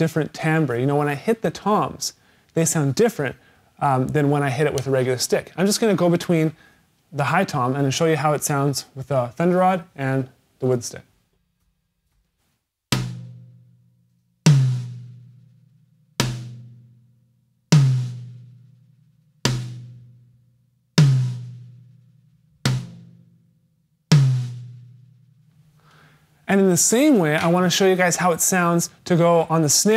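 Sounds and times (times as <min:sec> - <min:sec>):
high tom drum hits: 0:12.9 - 0:13.8, 0:14.5 - 0:15.5, 0:21.0 - 0:22.0, 0:22.7 - 0:23.3, 0:24.1 - 0:25.8.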